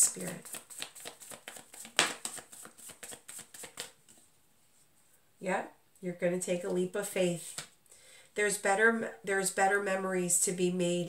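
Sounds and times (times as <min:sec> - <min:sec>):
cards shuffling: 0:00.0 - 0:04.2
card slap: 0:00.3 - 0:03.9.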